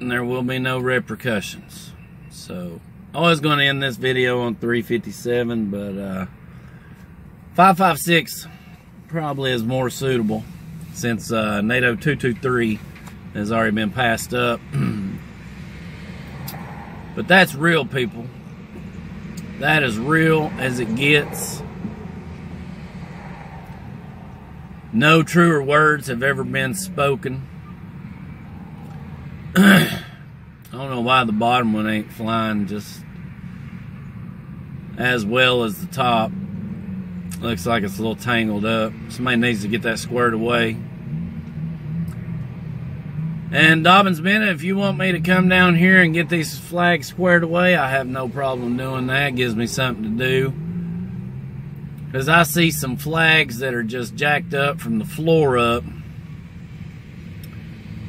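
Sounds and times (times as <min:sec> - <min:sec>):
man's guttural throat noise: 0:14.6 - 0:15.3, 0:29.5 - 0:30.2
low rumble: 0:20.5 - 0:25.0.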